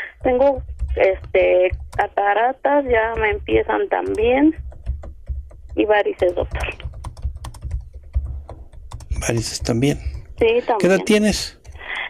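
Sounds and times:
keyboard typing: 0.0s - 12.0s.

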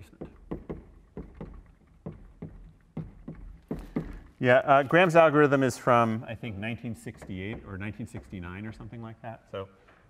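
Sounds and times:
chalk tapping on blackboard: 0.0s - 4.4s, 6.4s - 9.2s.

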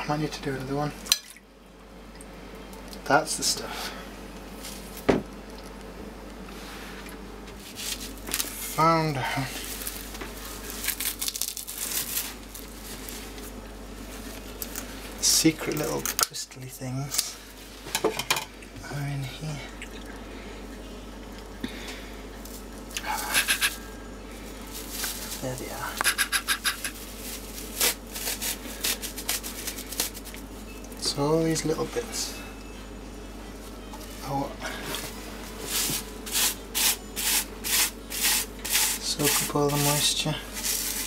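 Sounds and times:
nappy rustling and crinkling: 24.5s - 25.7s, 26.9s - 30.4s.

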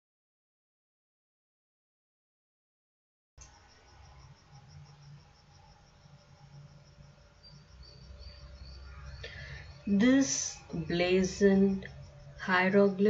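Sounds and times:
faint high-pitched chirps: 3.4s - 13.0s
low background hum: 3.4s - 13.0s.

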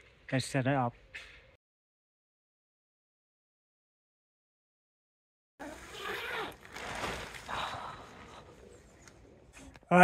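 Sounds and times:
tent fabric rustling: 5.6s - 8.2s.

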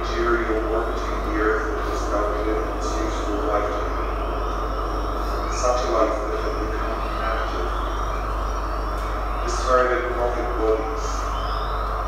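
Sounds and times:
constant low hum: 0.0s - 12.0s
steady noisy drone: 0.0s - 12.0s.

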